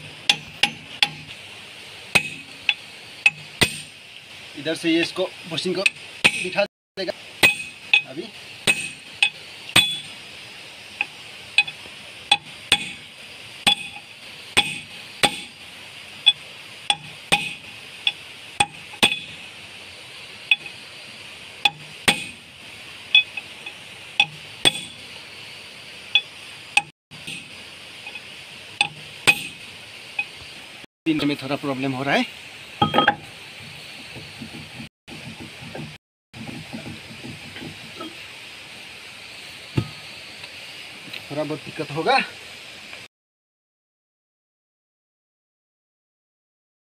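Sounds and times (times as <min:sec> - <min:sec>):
hammer striking steel bushing: 0:00.0 - 0:01.4, 0:02.1 - 0:04.0, 0:05.8 - 0:06.6, 0:07.4 - 0:10.2, 0:11.0 - 0:15.6, 0:16.2 - 0:19.5, 0:20.5 - 0:20.8, 0:21.6 - 0:22.5, 0:23.1 - 0:25.1, 0:26.2 - 0:30.3, 0:32.8 - 0:33.3.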